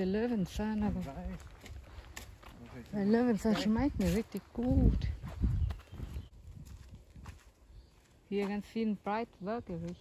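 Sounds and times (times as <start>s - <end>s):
footsteps on dirt track: 0.0s - 10.0s.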